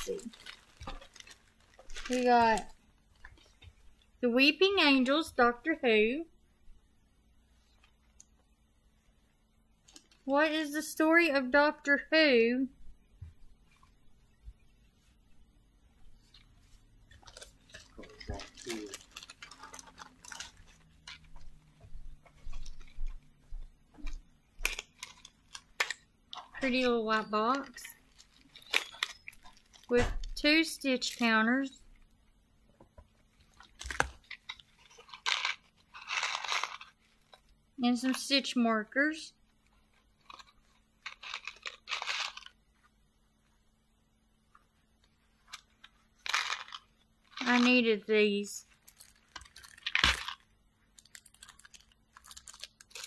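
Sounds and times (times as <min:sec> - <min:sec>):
cardboard box packaging crinkling: 0:00.0 - 0:03.5, 0:17.2 - 0:21.3, 0:27.2 - 0:29.9, 0:33.5 - 0:37.4, 0:40.2 - 0:42.6, 0:46.2 - 0:47.8, 0:51.0 - 0:53.0.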